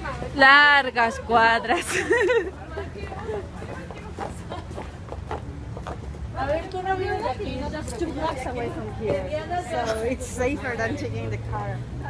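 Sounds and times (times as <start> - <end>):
high heel footsteps on pavement: 2.2 - 9.7.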